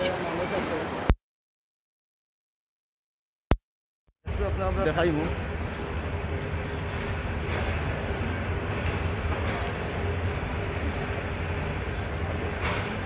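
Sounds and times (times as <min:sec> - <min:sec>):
train rumbling on rails: 0:04.3 - 0:13.0.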